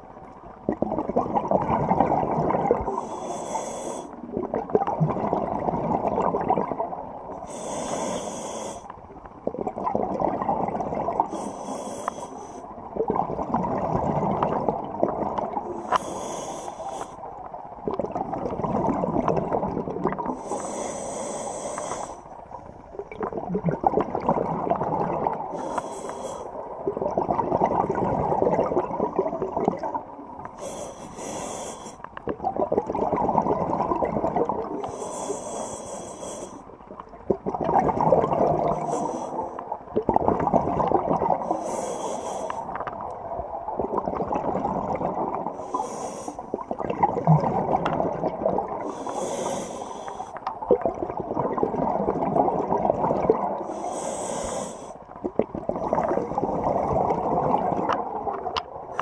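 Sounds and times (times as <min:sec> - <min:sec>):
bubbling exhaust underwater: 0:00.0 - 0:59.0
regulator inhale hiss: 0:02.9 - 0:04.2, 0:07.4 - 0:09.0, 0:11.3 - 0:12.7, 0:15.7 - 0:17.3, 0:20.4 - 0:22.3, 0:25.5 - 0:26.6, 0:30.6 - 0:32.1, 0:34.8 - 0:36.7, 0:38.7 - 0:39.7, 0:41.4 - 0:42.8, 0:45.5 - 0:46.6, 0:48.8 - 0:50.5, 0:53.6 - 0:55.0.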